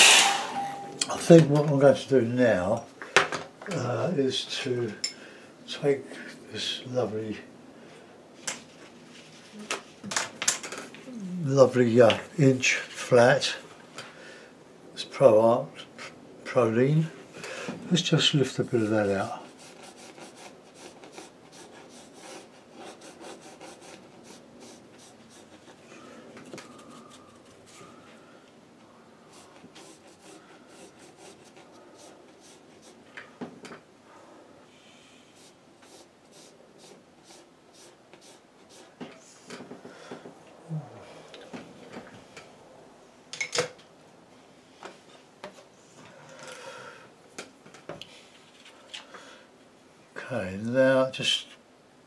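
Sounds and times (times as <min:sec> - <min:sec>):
brush scrubbing on paper: 0:18.7 - 0:25.8, 0:29.3 - 0:33.0, 0:35.4 - 0:39.0.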